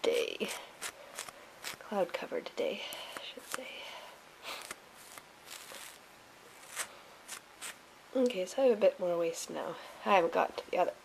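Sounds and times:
comb brushing through wool: 0.0s - 1.9s, 4.5s - 7.8s.

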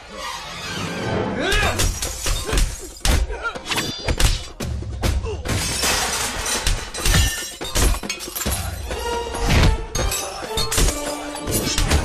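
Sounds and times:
music: 0.0s - 12.0s
glass shattering: 5.5s - 8.6s.

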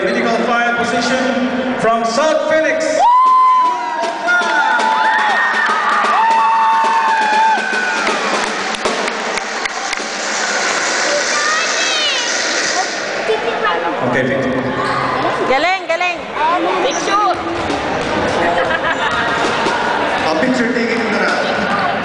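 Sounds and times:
crowd cheering and whooping: 3.0s - 13.0s, 17.8s - 22.0s
people clapping: 6.2s - 10.8s.

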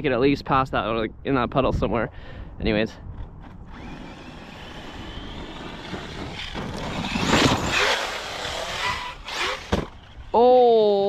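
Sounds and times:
tire noise on dirt: 3.1s - 10.5s
rc truck electric motor whine: 3.4s - 10.4s.

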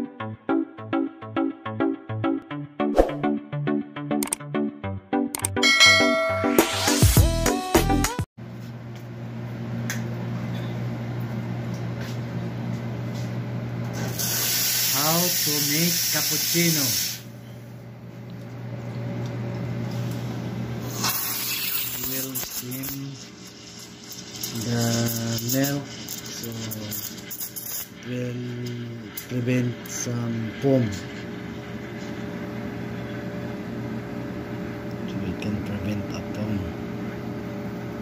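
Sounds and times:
machine low hum and rumble: 8.4s - 14.0s, 17.3s - 20.9s, 28.0s - 38.0s
loud steam hiss: 14.1s - 17.3s, 20.9s - 27.1s.

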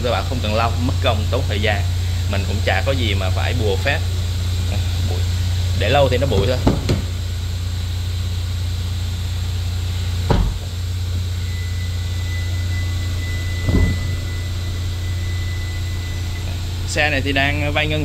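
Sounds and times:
steady low hum: 0.0s - 18.0s
dull thumps: 6.3s - 7.2s, 10.2s - 10.9s, 13.3s - 14.6s.

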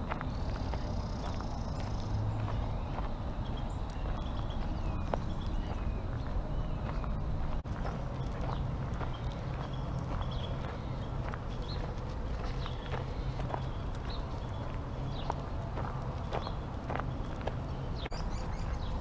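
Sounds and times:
footsteps on gravel: 0.0s - 19.0s
small birds chirping: 0.0s - 19.0s
steady low rumble: 0.0s - 19.0s.

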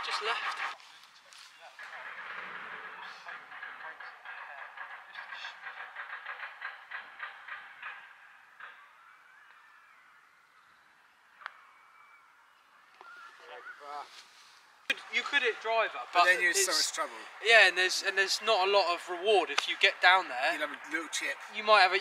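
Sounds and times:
faint wavering whistle: 8.5s - 13.8s.

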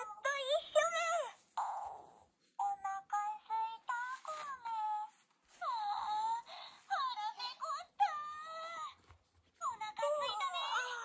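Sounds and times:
high-pitched toy voice: 0.0s - 9.0s, 9.6s - 11.0s.

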